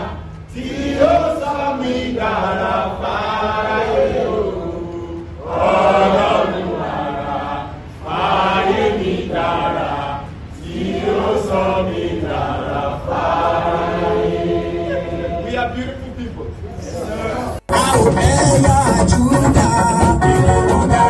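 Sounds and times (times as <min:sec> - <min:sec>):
group chanting a refrain: 0:00.0 - 0:15.8.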